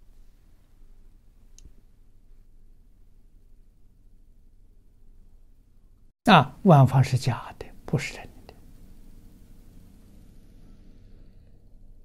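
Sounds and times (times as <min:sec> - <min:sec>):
low steady hum: 0:00.0 - 0:12.0
faint click: 0:01.5 - 0:01.8.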